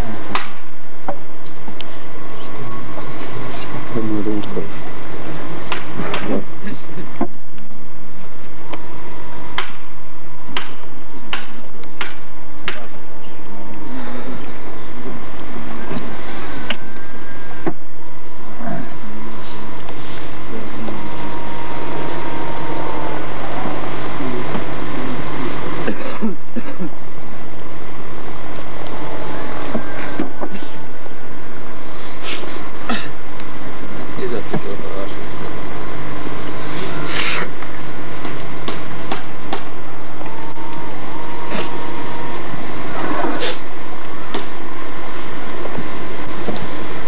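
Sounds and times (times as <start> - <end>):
steady hum and hiss: 0.0 - 47.0
sharp knocks: 10.5 - 13.0, 38.2 - 39.8.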